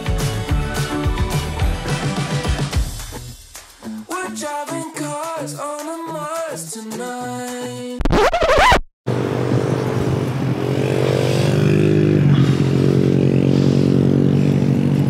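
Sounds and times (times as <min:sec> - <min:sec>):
background music: 0:00.0 - 0:07.9
short rising sweep: 0:08.0 - 0:08.8.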